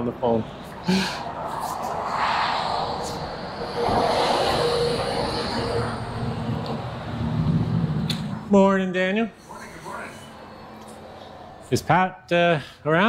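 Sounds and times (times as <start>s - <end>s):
motor vehicle rumble: 0.4s - 11.8s.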